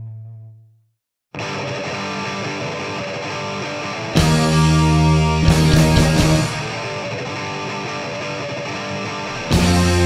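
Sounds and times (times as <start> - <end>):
distorted electric guitar: 1.4 - 10.0
punk rock band playing: 1.4 - 10.0.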